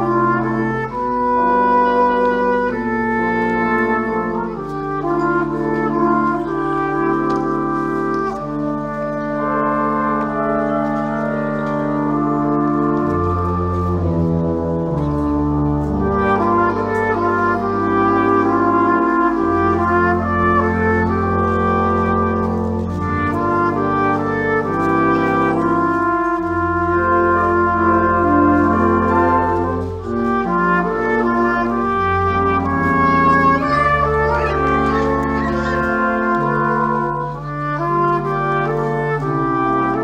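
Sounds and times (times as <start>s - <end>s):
brass horns playing sustained chords: 0.0s - 40.0s.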